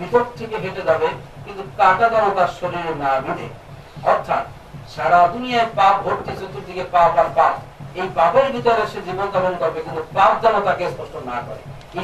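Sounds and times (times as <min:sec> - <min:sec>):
man speaking into microphone: 0:00.0 - 0:12.0.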